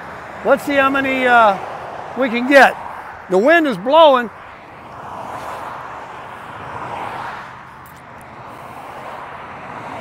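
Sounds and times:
cars passing on road: 0.0s - 10.0s.

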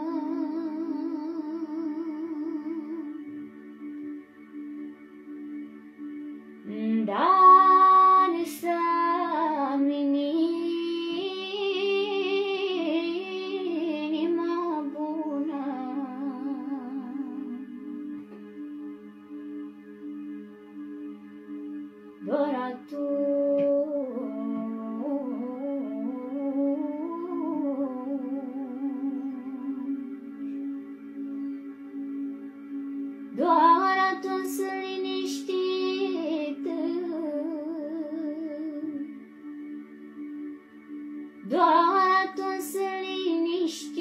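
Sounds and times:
woman singing wordless note: 6.7s - 18.3s, 33.3s - 39.1s, 41.4s - 44.0s.

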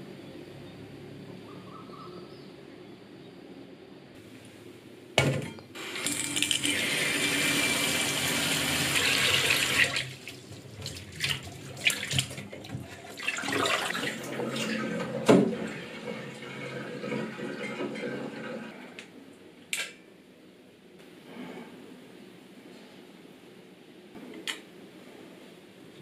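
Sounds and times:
room hum: 0.0s - 26.0s
tap water running into bowl: 5.8s - 18.5s.

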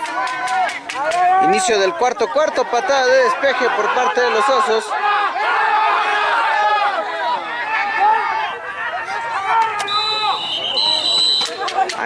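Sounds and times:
players calling out: 0.0s - 12.0s
referee whistle: 9.6s - 11.8s.

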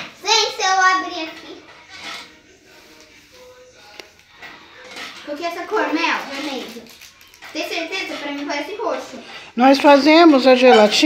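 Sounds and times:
plastic sachet rustling: 5.2s - 8.1s.

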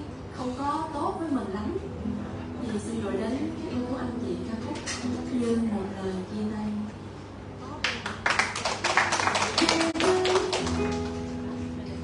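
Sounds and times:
classical guitar strums and taps: 9.6s - 12.0s.

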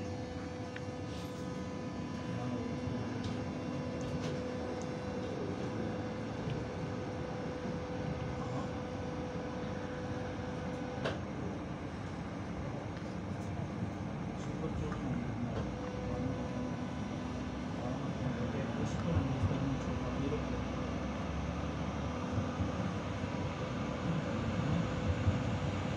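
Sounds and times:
steady electric whine: 0.0s - 25.9s.

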